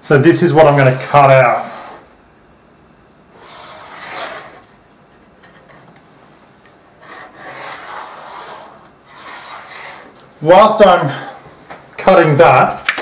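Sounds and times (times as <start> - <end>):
pen scratching on wood: 7.0 - 10.1.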